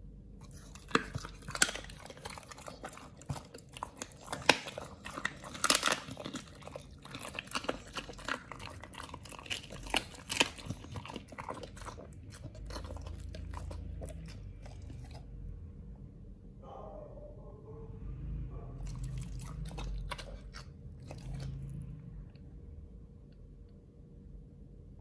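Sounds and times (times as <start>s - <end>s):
dog chewing bones crunching: 0.4s - 15.2s, 18.8s - 21.9s.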